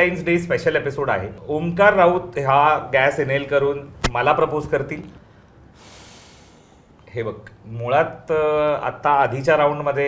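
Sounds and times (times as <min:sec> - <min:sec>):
person speaking: 0:02.7 - 0:05.2
person breathing in: 0:05.2 - 0:07.0.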